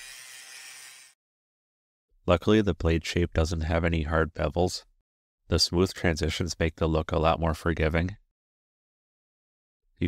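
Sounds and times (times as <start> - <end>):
angle grinder grinding steel: 0.0 - 1.2.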